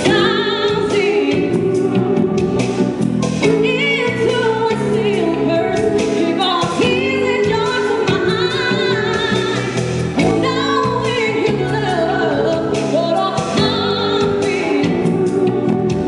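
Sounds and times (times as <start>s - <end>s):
electric bass: 0.0s - 16.0s
keyboards: 0.0s - 16.0s
woman singing with vibrato: 0.0s - 16.0s.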